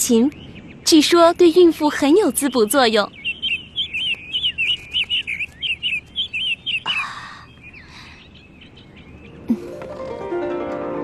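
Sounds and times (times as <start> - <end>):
songbird chirping rapidly: 0.0 - 10.2
soft music: 9.5 - 11.0.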